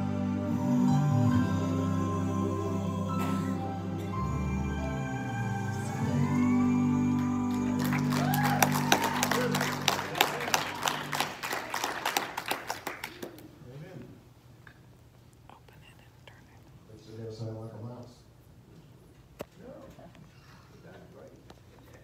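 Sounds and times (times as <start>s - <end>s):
song ending on held chord: 0.0s - 11.3s
congregation clapping: 7.1s - 13.5s.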